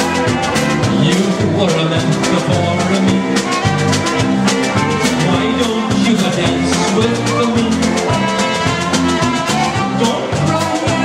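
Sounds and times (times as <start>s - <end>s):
drum kit dance beat: 0.0s - 11.0s
electric bass: 0.0s - 11.0s
trumpet lead: 0.0s - 11.0s.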